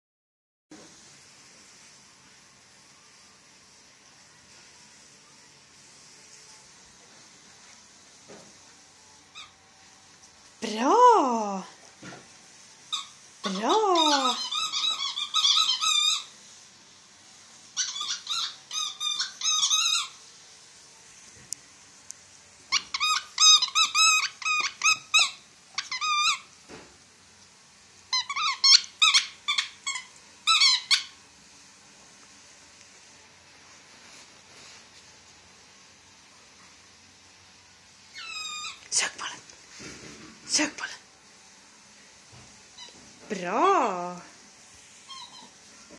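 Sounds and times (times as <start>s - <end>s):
squeaky toy ball squeaking: 12.9s - 16.3s, 17.8s - 20.2s, 22.7s - 26.4s, 28.1s - 31.1s, 38.1s - 38.8s
rustling of bedding: 32.0s - 36.1s
faint high squeak: 38.1s - 38.8s, 45.0s - 45.6s.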